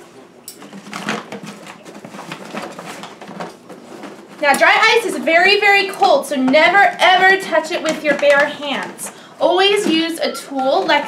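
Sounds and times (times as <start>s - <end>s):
paper bag and gloves rustling: 0.6s - 11.0s.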